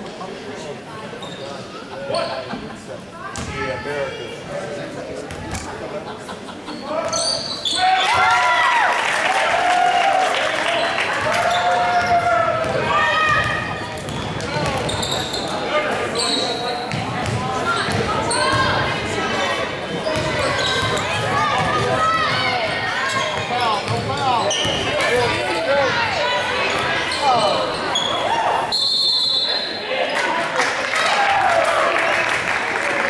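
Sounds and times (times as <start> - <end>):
shoes squeaking: 14.0 - 17.0, 23.0 - 25.4, 27.0 - 29.0
referee's whistle: 28.0 - 29.8.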